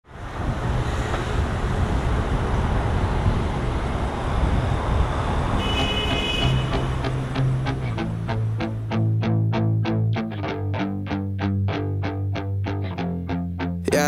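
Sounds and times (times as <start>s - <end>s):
bass and plucked notes music: 6.7s - 14.0s.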